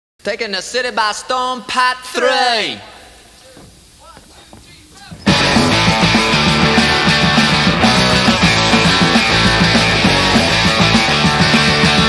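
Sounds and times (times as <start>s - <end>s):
punk rock band playing: 5.2s - 12.0s.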